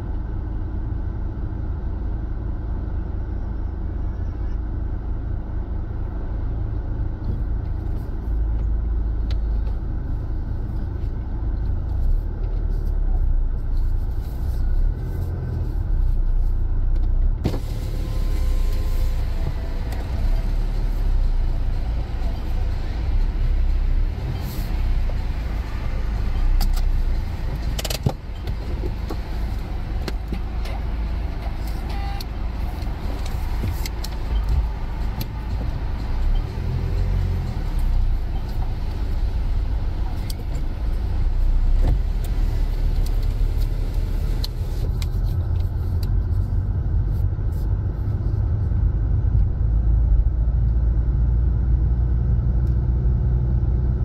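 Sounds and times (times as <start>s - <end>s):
car engine and tyre rumble: 0.0s - 54.0s.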